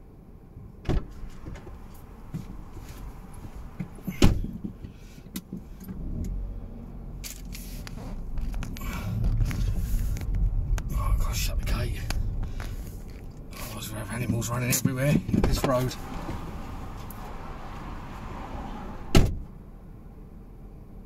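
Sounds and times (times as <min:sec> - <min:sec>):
car engine pulling away: 0:05.7 - 0:14.6, 0:15.4 - 0:19.2.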